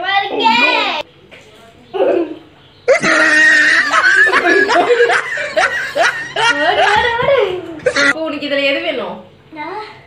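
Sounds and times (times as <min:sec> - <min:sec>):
women laughing loudly: 0:02.9 - 0:08.2.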